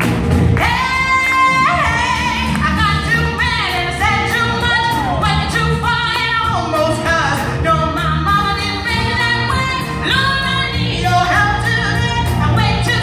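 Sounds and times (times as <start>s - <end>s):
bass guitar: 0.0s - 13.0s
drums: 0.0s - 13.0s
woman singing gospel: 0.6s - 13.0s.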